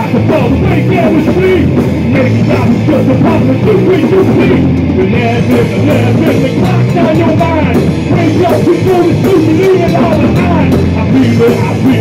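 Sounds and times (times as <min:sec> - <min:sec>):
bass guitar: 0:00.0 - 0:12.0
drum kit beat: 0:00.0 - 0:12.0
electric guitars: 0:00.0 - 0:12.0.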